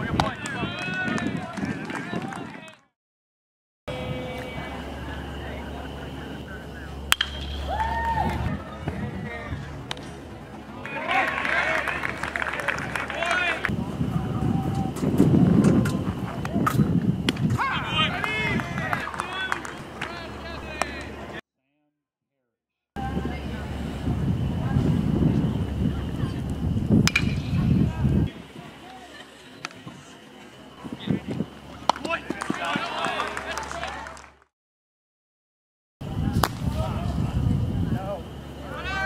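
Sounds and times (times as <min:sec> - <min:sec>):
low outdoor rumble: 0:03.9 - 0:21.4, 0:23.0 - 0:33.6
people shouting: 0:07.5 - 0:08.7, 0:10.8 - 0:13.7, 0:17.6 - 0:21.0, 0:38.7 - 0:39.0
high rising-and-falling yell: 0:07.6 - 0:08.7.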